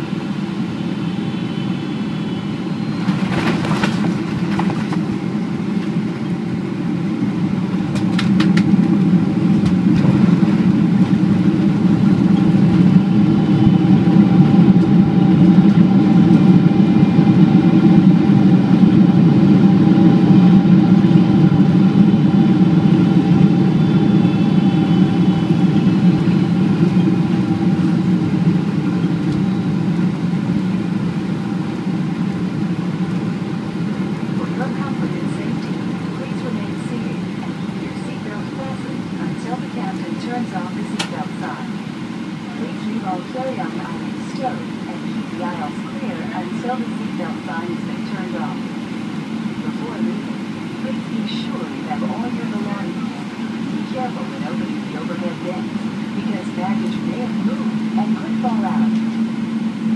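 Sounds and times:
jet engines roaring: 0.0s - 59.9s
airplane touchdown jolt: 3.0s - 5.1s.

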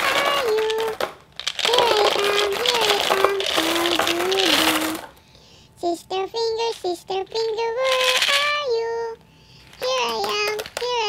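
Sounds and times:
person singing: 0.0s - 1.0s, 1.7s - 5.1s, 5.8s - 9.2s, 9.8s - 11.0s
candies pouring and clattering: 0.0s - 5.2s, 7.8s - 8.6s, 9.7s - 11.0s.

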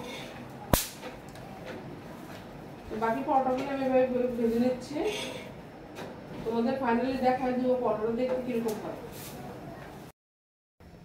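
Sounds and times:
electric mosquito racket zap: 0.7s - 1.0s.

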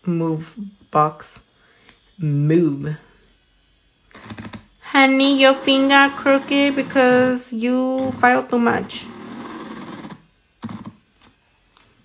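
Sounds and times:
person speaking: 4.8s - 9.2s.

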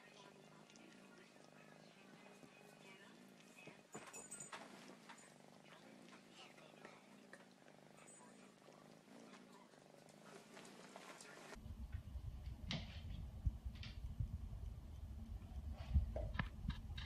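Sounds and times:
kitten purring: 0.0s - 11.6s
low rumble: 11.6s - 17.0s.

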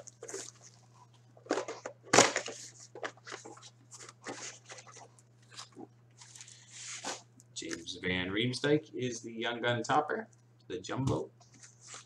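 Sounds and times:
foil wrappers crinkling and tearing: 0.0s - 7.3s
steady low hum: 0.0s - 12.0s.

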